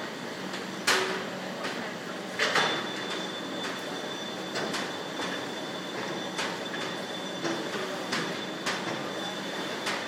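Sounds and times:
factory machinery hum: 0:00.0 - 0:10.0.

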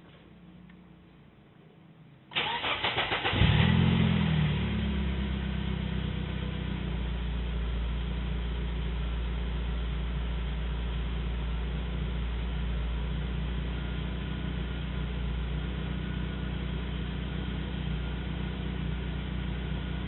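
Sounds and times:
car engine revving and idling: 0:02.5 - 0:20.0.

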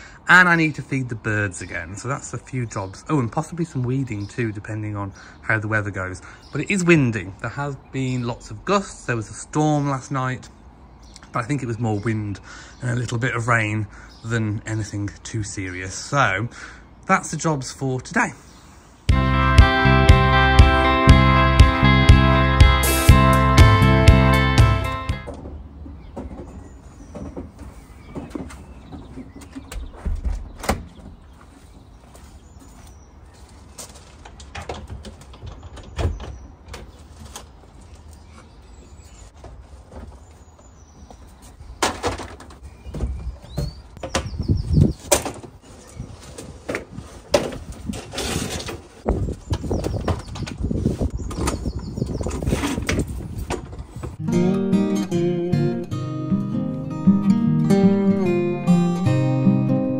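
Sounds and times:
acoustic guitar music: 0:19.1 - 0:25.3, 0:54.2 - 0:59.9
knocks and rattles in shed: 0:23.1 - 0:54.2
wind buffeting microphone: 0:42.8 - 0:54.2.

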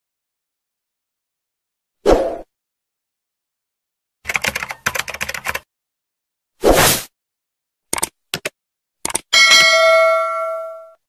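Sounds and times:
bell ding: 0:09.4 - 0:11.0.

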